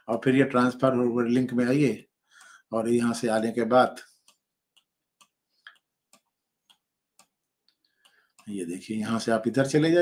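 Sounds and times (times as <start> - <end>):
faint regular ticks: 4.0 - 9.9.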